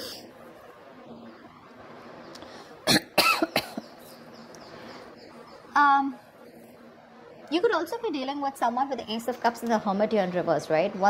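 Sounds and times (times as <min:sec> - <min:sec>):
person coughing: 0:02.9 - 0:03.8.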